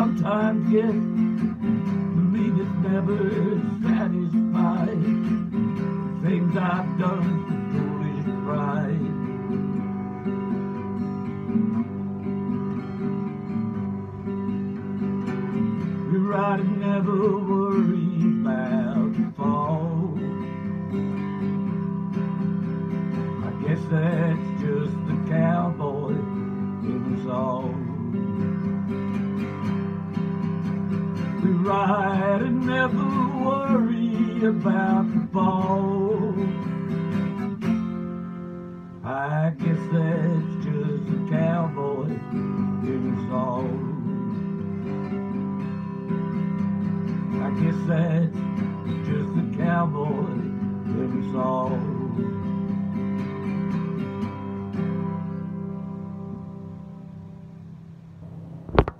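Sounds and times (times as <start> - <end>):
acoustic guitar strummed: 0.0 - 58.9.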